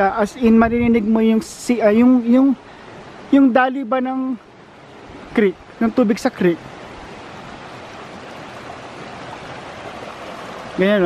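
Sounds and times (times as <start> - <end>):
creek water rushing over stones: 0.0 - 11.0.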